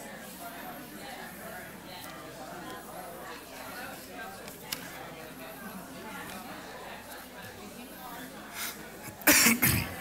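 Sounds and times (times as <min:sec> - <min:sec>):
faint murmuring: 0:00.0 - 0:10.0
person coughing: 0:09.2 - 0:10.0.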